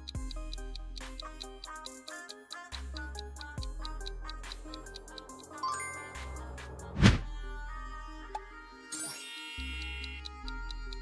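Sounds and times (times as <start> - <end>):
ticking timer clicks: 0.0 - 6.9, 9.6 - 11.0
light background music: 0.0 - 11.0
loud transition sound effect: 6.2 - 7.3.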